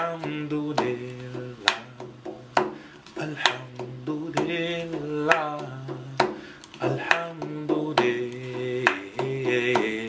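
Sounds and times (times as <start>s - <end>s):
hand tapping on furniture: 0.0s - 10.0s.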